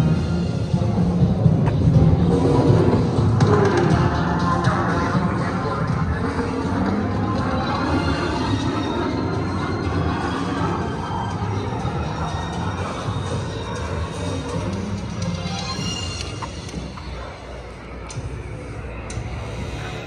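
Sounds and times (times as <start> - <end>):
music over loudspeakers: 0.0 - 20.0.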